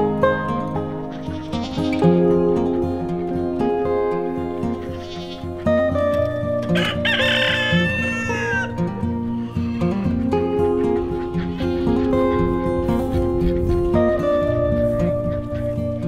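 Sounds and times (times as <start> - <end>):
music of sustained notes: 0.0 - 16.0
rooster crowing: 6.7 - 8.8.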